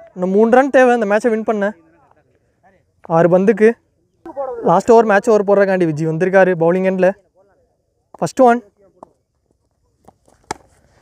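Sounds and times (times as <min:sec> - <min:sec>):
cricket bat hitting ball: 0:10.0 - 0:10.8.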